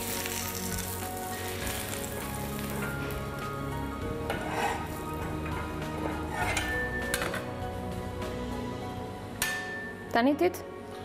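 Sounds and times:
batter sizzling on a pan: 0:00.0 - 0:03.3
spatula scraping a pan: 0:04.3 - 0:06.8.

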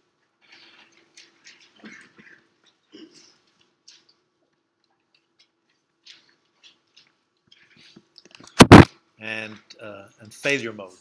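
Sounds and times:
stylus scratching on screen: 0:05.1 - 0:08.9.

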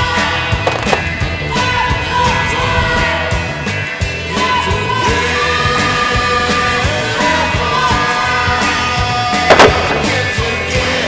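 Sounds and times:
rock song: 0:00.0 - 0:11.0.

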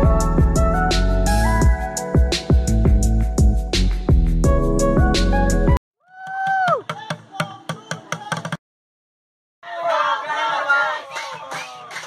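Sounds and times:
drumming on plastic buckets: 0:06.3 - 0:08.6.

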